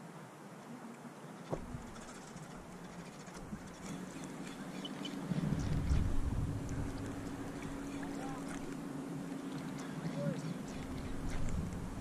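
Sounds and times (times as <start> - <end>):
shallow seawater moving: 1.5 - 12.0
wind buffeting microphone: 1.5 - 12.0
steady low hum: 1.6 - 12.0.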